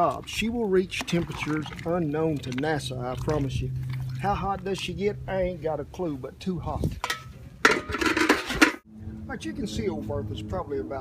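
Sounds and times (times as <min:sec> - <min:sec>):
pot lid and ladle clattering: 0:07.0 - 0:08.8.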